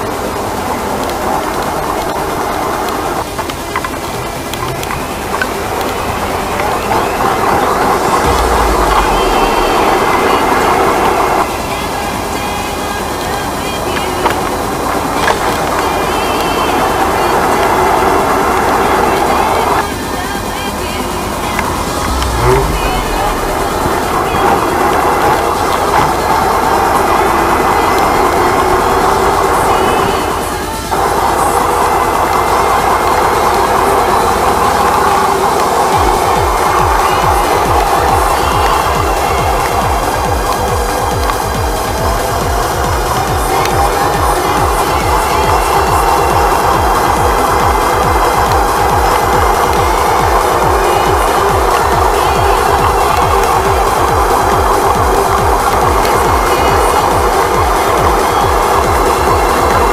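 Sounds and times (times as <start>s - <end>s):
road rumble: 0.0s - 59.9s
wind rushing noise: 21.6s - 33.0s.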